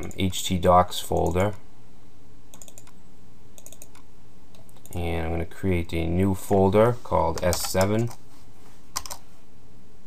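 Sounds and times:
steady low hum: 0:00.0 - 0:10.0
computer keyboard clicks: 0:02.5 - 0:03.0, 0:03.6 - 0:05.0, 0:09.0 - 0:09.2.

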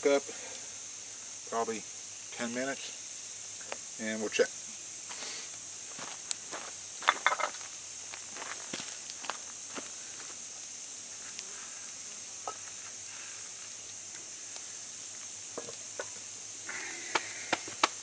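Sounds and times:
campfire crackling and popping: 0:00.0 - 0:18.0
steady high hiss: 0:00.0 - 0:18.0.

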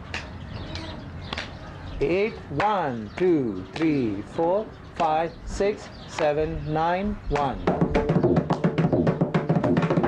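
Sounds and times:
hand claps: 0:02.6 - 0:04.0, 0:05.0 - 0:05.2, 0:07.3 - 0:07.6, 0:08.4 - 0:08.8.

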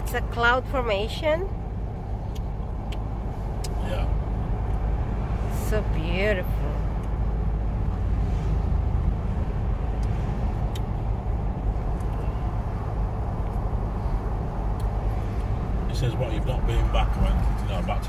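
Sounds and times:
car road rumble from inside: 0:00.0 - 0:18.0.

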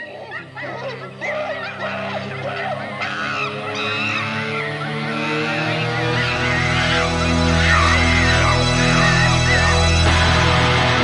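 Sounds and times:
sustained low notes: 0:01.8 - 0:11.0
wavering honk-like high tones: 0:02.3 - 0:10.8.

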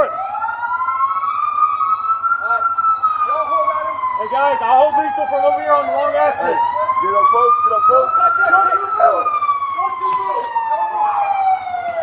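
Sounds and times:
emergency vehicle siren wailing: 0:00.0 - 0:12.0.

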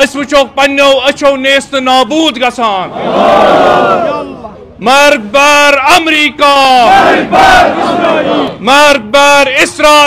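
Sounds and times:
man calling into a microphone: 0:00.0 - 0:02.9, 0:04.1 - 0:06.9, 0:08.5 - 0:10.0
crowd of men chanting: 0:02.9 - 0:04.3, 0:06.8 - 0:08.6.

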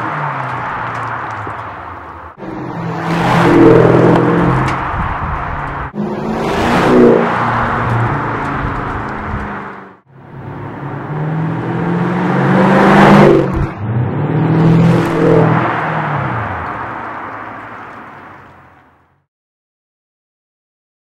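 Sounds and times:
car driving past: 0:02.4 - 0:18.5.

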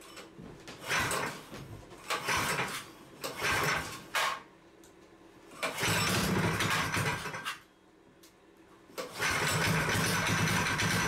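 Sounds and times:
small engine pull-start cranking: 0:02.1 - 0:04.4, 0:05.6 - 0:07.5, 0:09.0 - 0:11.0.

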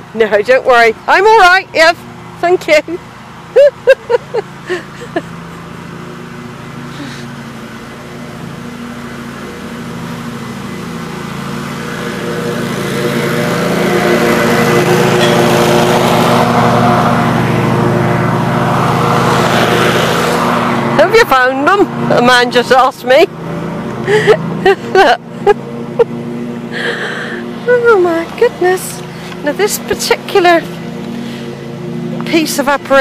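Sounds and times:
engine approaching: 0:00.0 - 0:33.0.

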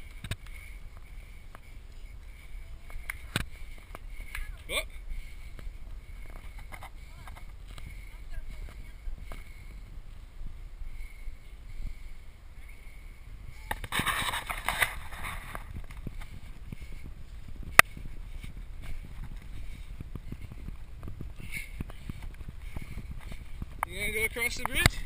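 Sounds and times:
wind rumble on microphone: 0:00.0 - 0:25.0.

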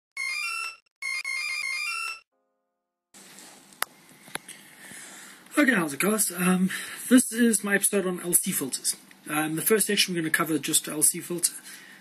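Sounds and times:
faint room hiss: 0:03.2 - 0:12.0.

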